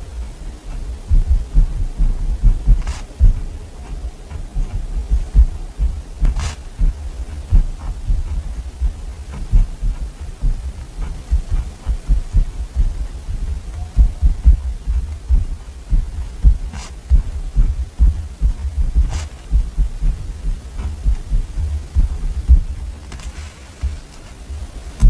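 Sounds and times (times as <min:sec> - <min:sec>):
pen nib scratching paper: 0:00.1 - 0:24.4.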